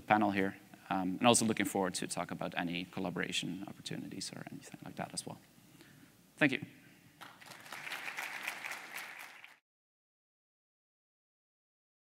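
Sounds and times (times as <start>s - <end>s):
audience applauding: 7.2s - 9.6s.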